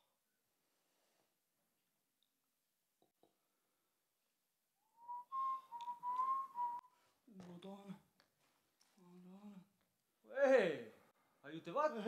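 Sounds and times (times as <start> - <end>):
person whistling: 4.8 - 7.0.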